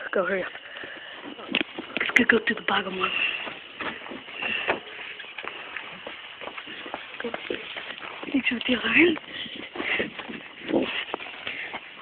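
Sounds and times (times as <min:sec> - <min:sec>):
shuffling and scuffing: 0:00.1 - 0:12.0.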